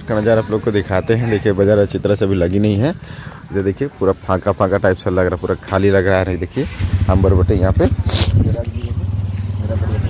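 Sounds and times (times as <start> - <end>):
vehicle engine running at low revs: 6.4 - 10.0.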